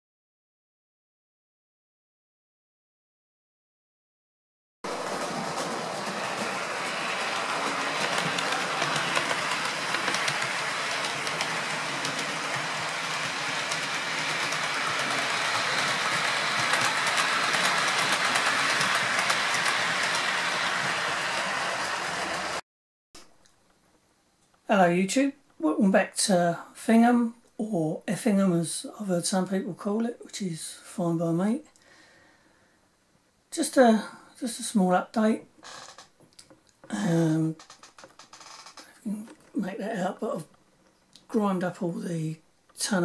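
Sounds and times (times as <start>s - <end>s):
wheels clicking over rails: 4.9s - 22.6s
model train motor whirring: 5.0s - 22.6s.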